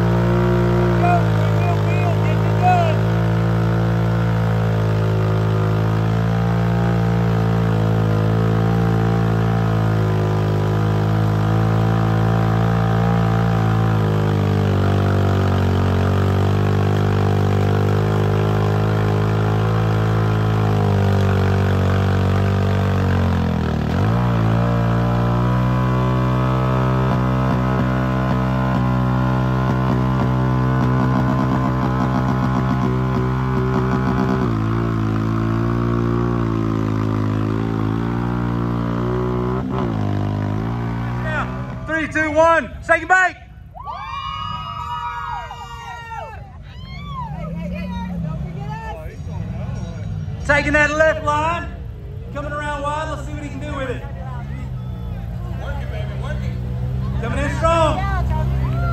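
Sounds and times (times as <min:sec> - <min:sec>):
atv engine revving under load: 0:00.0 - 0:43.0, 0:47.2 - 0:58.9.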